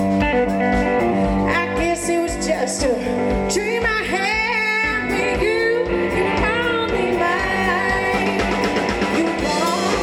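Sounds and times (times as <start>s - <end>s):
drum kit beat: 0.0s - 10.0s
electric guitar: 0.0s - 10.0s
woman singing: 1.4s - 10.0s.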